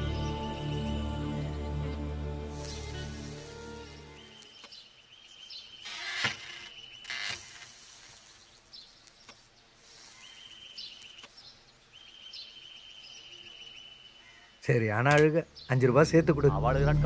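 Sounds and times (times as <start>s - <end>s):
high pulsing chirping trill: 0.0s - 7.5s, 10.0s - 11.3s, 12.0s - 13.9s.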